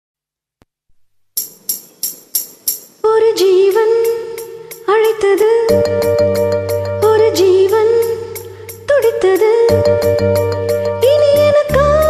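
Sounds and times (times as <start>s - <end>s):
tambourine-like percussion strikes: 1.4s - 3.0s
film song backing track: 5.4s - 12.0s.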